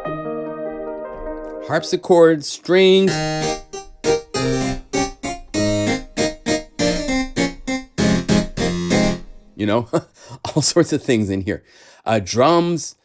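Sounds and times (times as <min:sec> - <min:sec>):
harpsichord notes and chords: 0:00.0 - 0:09.8.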